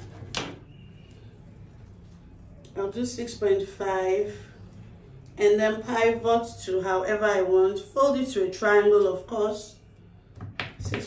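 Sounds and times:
steady low hum: 0.0 - 10.8.

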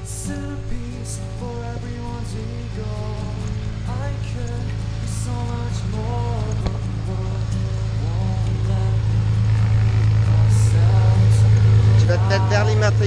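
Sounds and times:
background music: 0.0 - 13.0
propeller plane engine running: 0.0 - 13.0.

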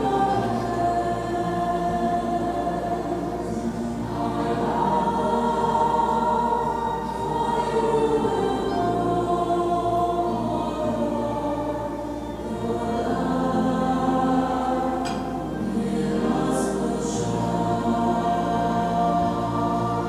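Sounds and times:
group singing a hymn: 0.0 - 20.0.

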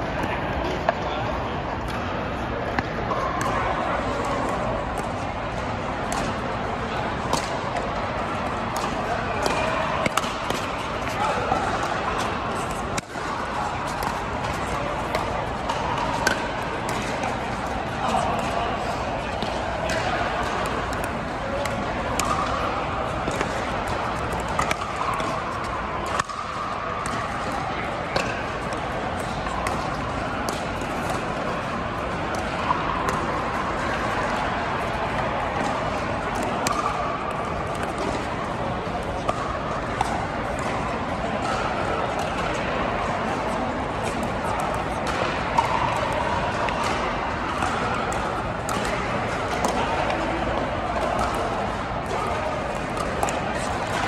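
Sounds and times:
indistinct voices in hall: 0.0 - 54.0
paddles hitting plastic ball: 7.2 - 31.6, 35.1 - 38.3.

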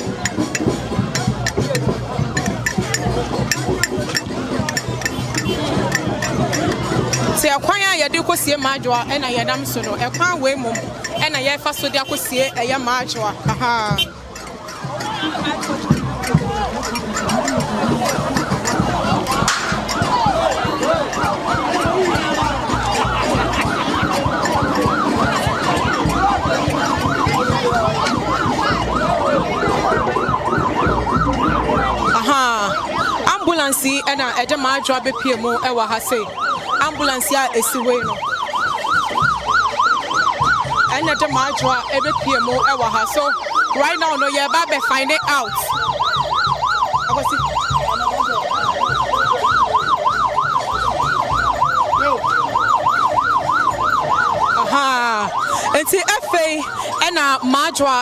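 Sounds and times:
ambulance siren: 0.0 - 58.0.

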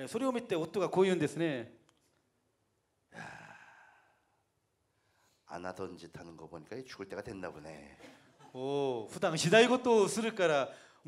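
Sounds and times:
man sighing into a microphone: 3.1 - 4.3.

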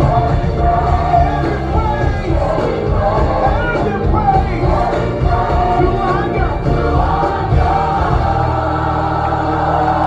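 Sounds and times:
choir singing: 0.0 - 10.0
instrumental accompaniment: 0.0 - 10.0.

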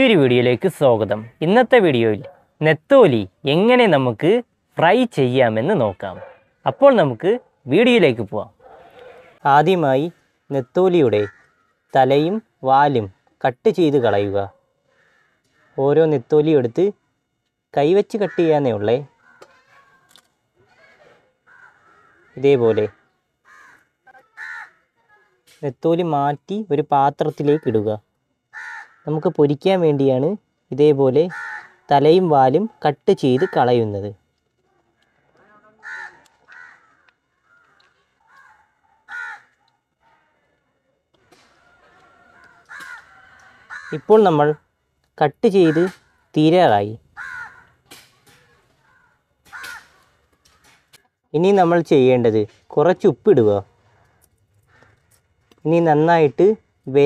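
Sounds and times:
crows cawing: 10.0 - 12.0, 13.9 - 16.0, 18.1 - 20.2, 20.8 - 25.5, 27.3 - 29.3, 31.2 - 32.0, 33.2 - 33.9, 35.0 - 40.6, 41.3 - 44.7, 45.6 - 46.4, 47.0 - 51.2, 53.7 - 55.6.

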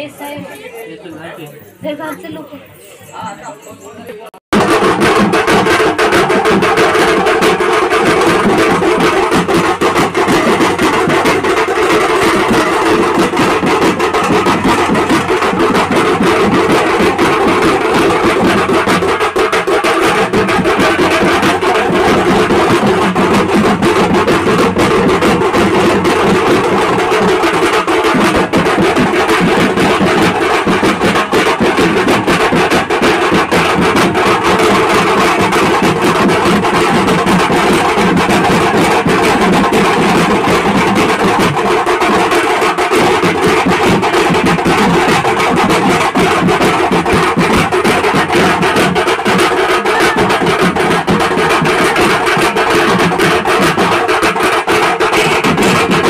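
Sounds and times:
barrel drums beaten fast: 4.5 - 56.0.

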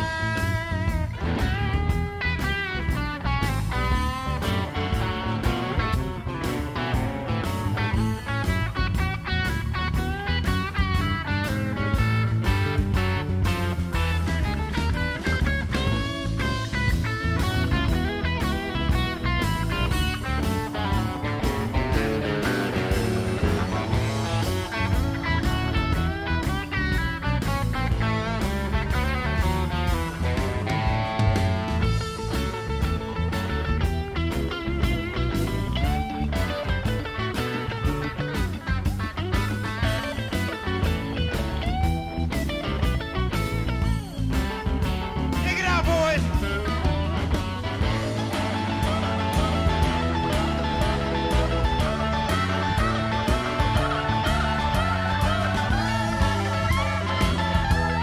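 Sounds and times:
bass guitar: 0.0 - 58.0
drums: 0.0 - 58.0
electric guitar solo: 0.0 - 58.0.

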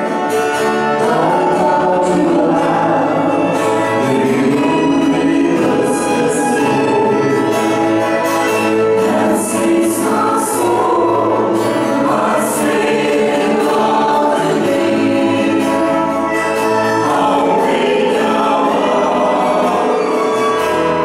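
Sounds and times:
choir singing long notes: 0.0 - 21.0.

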